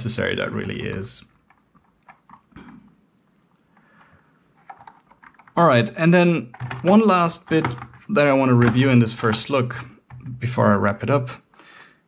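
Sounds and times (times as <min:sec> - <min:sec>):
faint mechanical keyboard keystrokes: 0:01.4 - 0:05.6.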